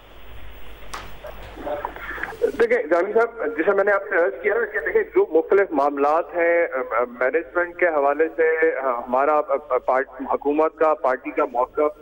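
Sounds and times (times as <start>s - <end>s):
faint hiss: 0.0s - 12.0s
man speaking over phone line: 2.3s - 12.0s.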